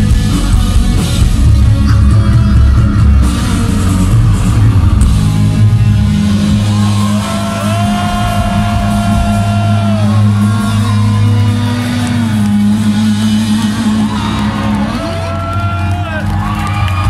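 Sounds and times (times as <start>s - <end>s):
metal band playing live: 0.0s - 17.0s.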